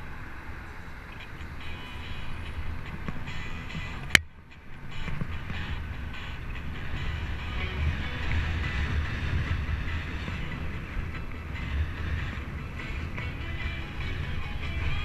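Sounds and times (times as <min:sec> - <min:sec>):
tyre and road noise: 0:00.0 - 0:15.0
wind buffeting microphone: 0:00.0 - 0:15.0.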